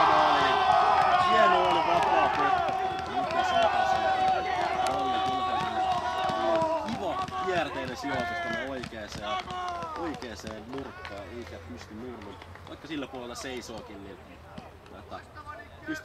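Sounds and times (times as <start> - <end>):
voices shouting and cheering: 0.0 - 16.0.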